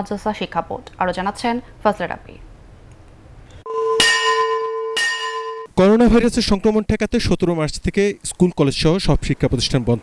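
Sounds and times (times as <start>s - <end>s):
bell ringing: 3.7s - 5.7s.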